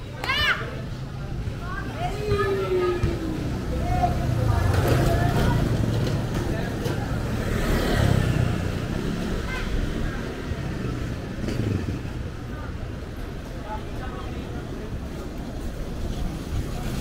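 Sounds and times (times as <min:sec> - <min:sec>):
motorcycle engines passing: 0:00.6 - 0:17.0.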